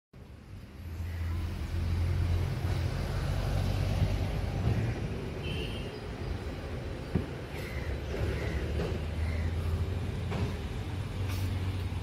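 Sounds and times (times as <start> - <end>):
vehicle engine passing: 0.8 - 5.1.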